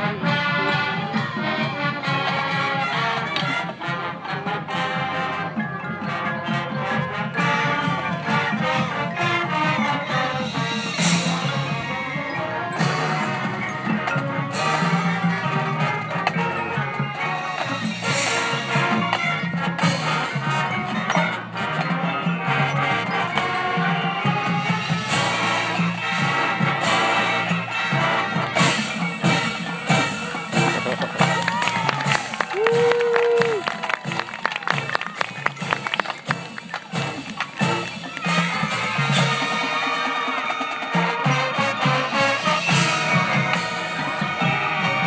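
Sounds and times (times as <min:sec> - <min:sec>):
marching band playing: 0:00.0 - 0:45.0.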